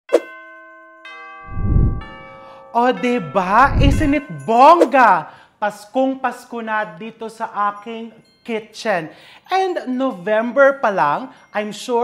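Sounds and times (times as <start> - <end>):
bell-like chime ringing: 0.2 - 2.8
low rushing noise: 1.5 - 2.2, 3.6 - 4.2.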